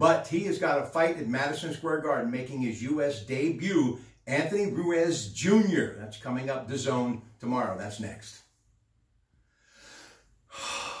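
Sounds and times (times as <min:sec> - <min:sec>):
man breathing: 0:09.3 - 0:11.0.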